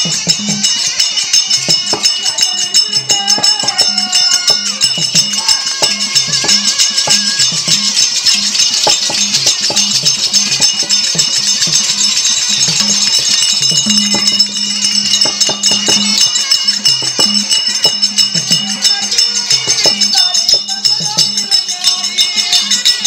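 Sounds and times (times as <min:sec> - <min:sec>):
ankle bells jingling: 0:00.0 - 0:23.0
drum strokes: 0:00.0 - 0:23.0
held instrumental tones: 0:00.0 - 0:23.0.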